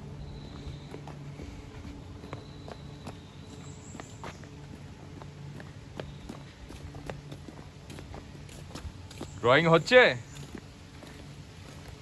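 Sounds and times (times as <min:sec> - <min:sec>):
footsteps on stone path: 0:00.0 - 0:12.0.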